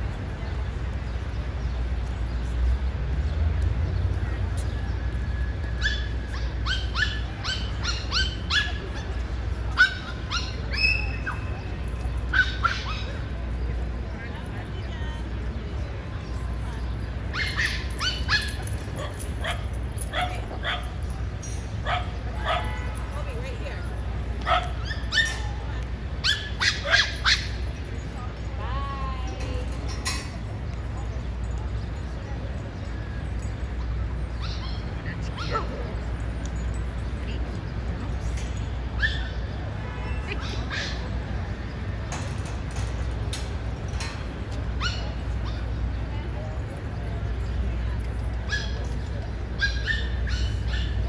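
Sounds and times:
low city rumble: 0:00.0 - 0:51.0
dog yipping: 0:05.8 - 0:11.5, 0:12.3 - 0:13.3, 0:17.3 - 0:20.9, 0:24.4 - 0:25.6, 0:26.2 - 0:27.6, 0:34.4 - 0:35.9, 0:39.0 - 0:39.4, 0:40.3 - 0:41.1, 0:44.8 - 0:45.7, 0:48.5 - 0:48.9, 0:49.6 - 0:51.0.

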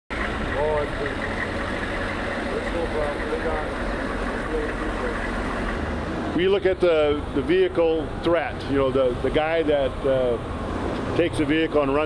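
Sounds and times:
diesel engine idling: 0:00.1 - 0:12.0
faint voices: 0:00.5 - 0:05.4.

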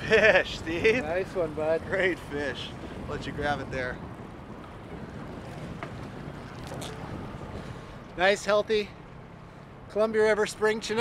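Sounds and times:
wind on microphone: 0:00.0 - 0:08.2
wind and water rumble: 0:00.0 - 0:11.0.

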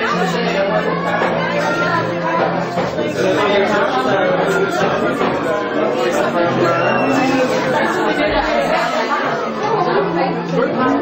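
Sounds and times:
music playing: 0:00.0 - 0:11.0
people chattering: 0:00.0 - 0:11.0.

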